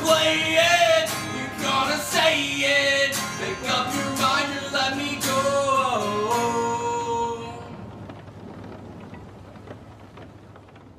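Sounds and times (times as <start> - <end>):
man singing: 0.0 - 7.8
strummed acoustic guitar: 0.0 - 10.6.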